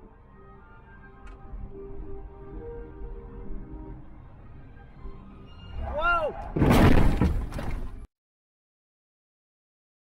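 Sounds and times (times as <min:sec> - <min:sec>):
vehicle crash with shattering: 0:06.5 - 0:08.1.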